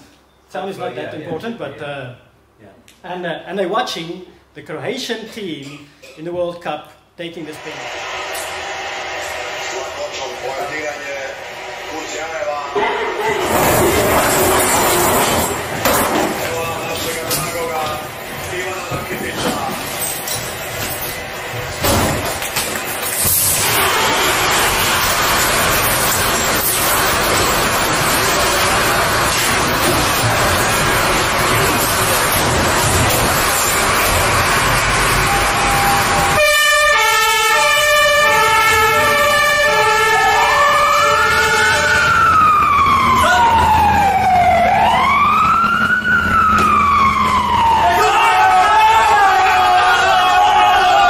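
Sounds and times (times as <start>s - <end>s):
fire engine siren: 23.2s - 51.0s.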